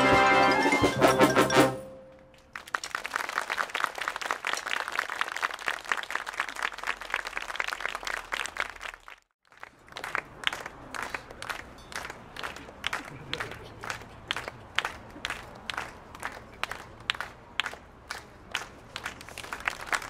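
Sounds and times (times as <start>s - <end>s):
audience applauding: 2.5s - 20.0s.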